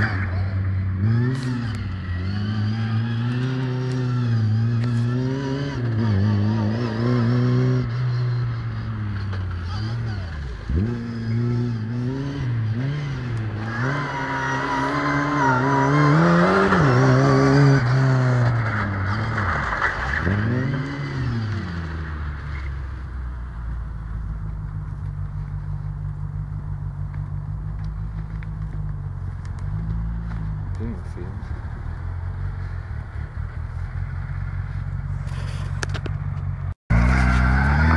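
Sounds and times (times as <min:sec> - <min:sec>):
car engine revving: 0:00.0 - 0:37.9.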